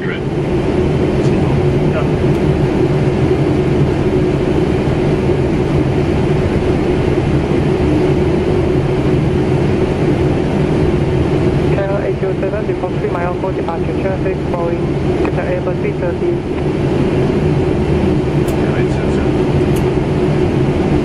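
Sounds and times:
air conditioning: 0.0s - 21.0s
low steady hum: 0.0s - 21.0s.

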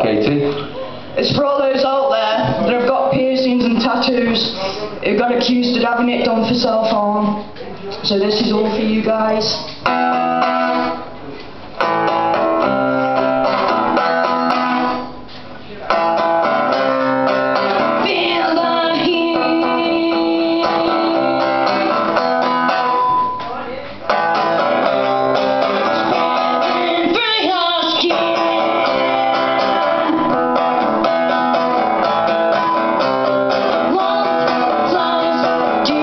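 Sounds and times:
acoustic guitar strumming: 8.4s - 36.0s
woman singing: 17.9s - 22.2s, 26.1s - 30.4s, 33.7s - 36.0s.

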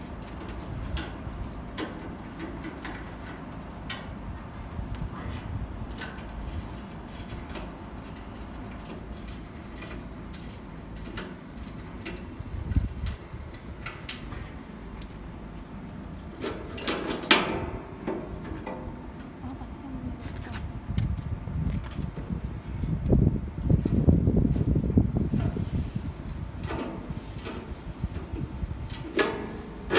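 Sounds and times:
wind rumble on microphone: 0.0s - 14.7s, 17.5s - 29.9s
metal clatter: 6.0s - 15.3s
small metal clicks and clinks: 15.0s - 15.3s.

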